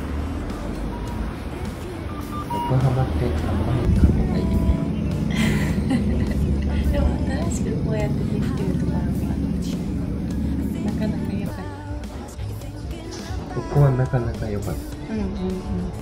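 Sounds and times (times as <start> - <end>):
road traffic rumble: 0.0 - 13.8.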